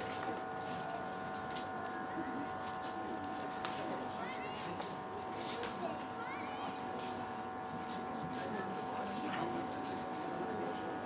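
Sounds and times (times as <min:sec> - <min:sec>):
faint indistinct voices: 0:00.0 - 0:11.0
steady hum of fixed tones: 0:00.0 - 0:11.0.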